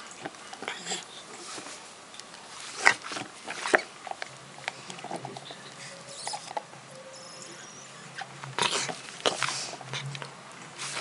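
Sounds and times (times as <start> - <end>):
dog chewing rubber ball: 0.0 - 11.0
noisy bursts: 1.8 - 11.0
dog snuffling breaths: 7.7 - 10.2.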